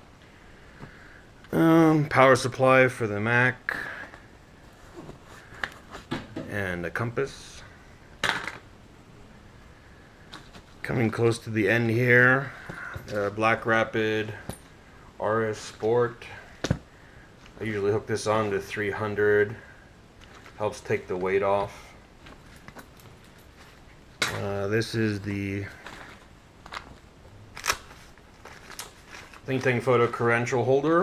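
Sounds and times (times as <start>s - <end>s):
strap handling clicks and rustles: 5.0s - 6.4s, 20.2s - 24.6s, 25.7s - 30.4s
small gear clattering: 21.6s - 24.6s.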